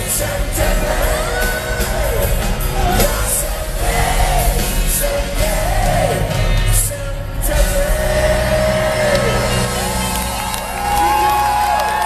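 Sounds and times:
live rock band: 0.0s - 12.0s
audience whoops and shouts: 9.1s - 12.0s.

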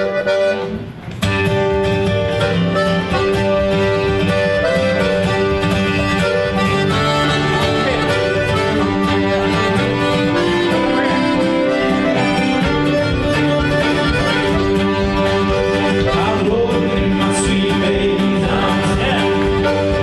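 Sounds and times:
acoustic guitar: 0.0s - 20.0s
button accordion: 0.0s - 20.0s
fiddle: 0.0s - 20.0s.

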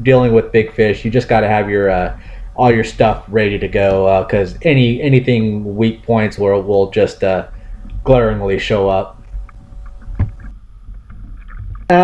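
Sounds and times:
low wind rumble on microphone: 9.0s - 12.0s.

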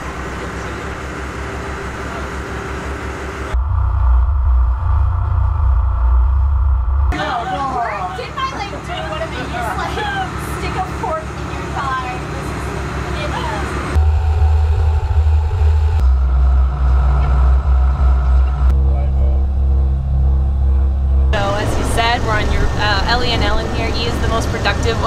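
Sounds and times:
boat engines droning: 0.0s - 3.8s, 7.0s - 25.0s
voices and laughter: 7.2s - 12.2s.

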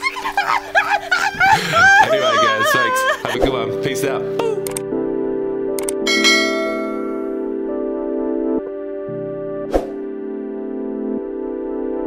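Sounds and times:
held keyboard chords: 0.0s - 12.0s
bright bell-like chime: 6.1s - 7.4s.

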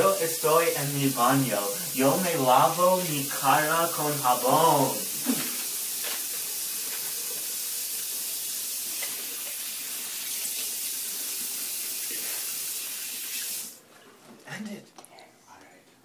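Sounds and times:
faucet running into sink: 0.0s - 13.8s.

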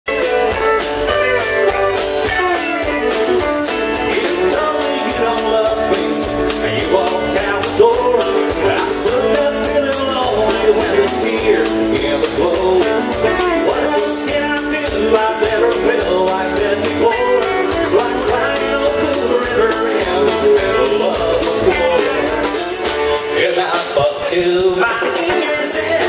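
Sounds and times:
country band playing: 0.0s - 26.0s
drums: 0.0s - 26.0s
guitars: 0.0s - 26.0s
man singing: 0.1s - 26.0s.

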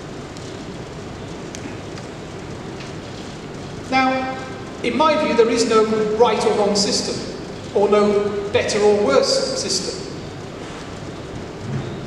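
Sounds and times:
hall room tone hiss: 0.0s - 11.8s.

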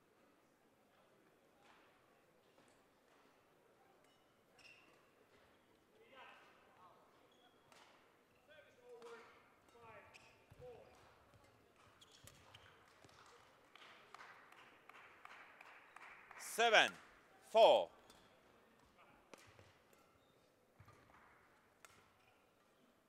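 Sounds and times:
shoes squeaking on court floor: 12.0s - 12.6s.

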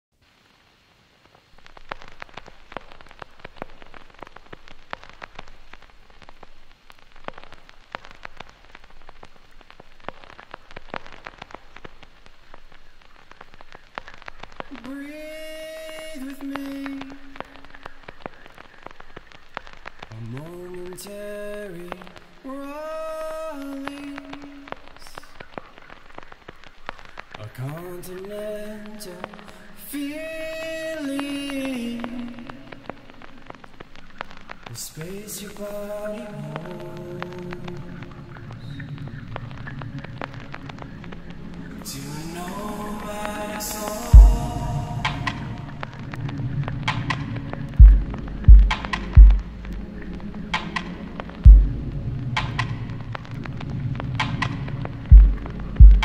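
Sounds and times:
vinyl record crackling: 0.1s - 56.0s
steady low hum: 44.1s - 46.8s, 47.8s - 52.9s.

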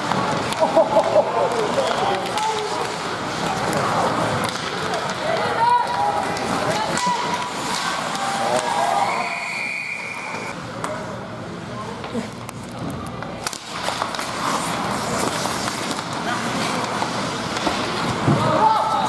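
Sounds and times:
hockey sticks and puck clacking: 0.0s - 9.2s, 12.0s - 19.0s
voices from the stands: 0.5s - 13.4s
referee's whistle: 9.0s - 10.5s.

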